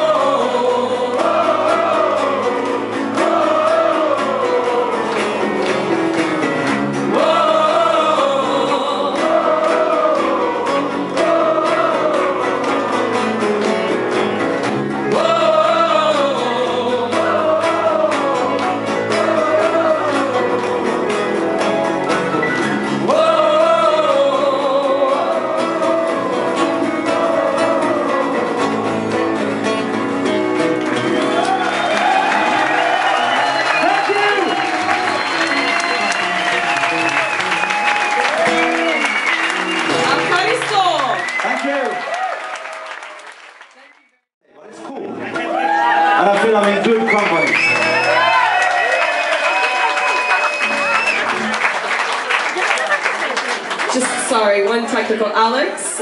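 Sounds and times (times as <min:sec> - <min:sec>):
man and woman singing: 0:00.0 - 0:05.6, 0:07.0 - 0:13.4, 0:15.0 - 0:21.4, 0:23.0 - 0:29.2
acoustic guitars: 0:00.0 - 0:41.9, 0:44.8 - 0:56.0
audience applause and cheering: 0:00.0 - 0:44.3, 0:45.1 - 0:54.7.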